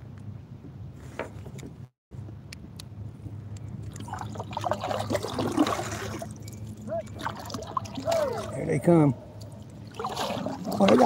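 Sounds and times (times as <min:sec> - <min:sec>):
water trickling: 0:03.8 - 0:11.0
rowing crew calling out: 0:06.8 - 0:11.0.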